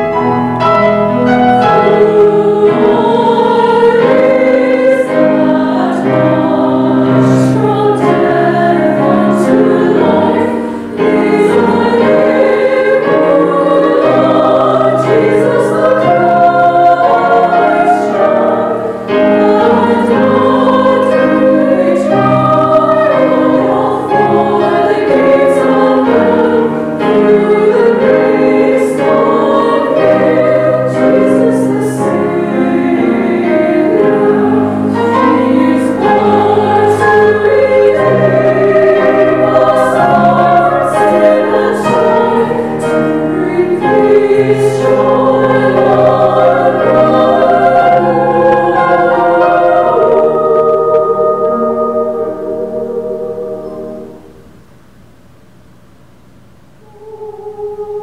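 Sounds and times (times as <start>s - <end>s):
piano accompaniment: 0.0s - 54.5s
women's choir singing carol: 0.0s - 54.5s, 56.8s - 58.0s.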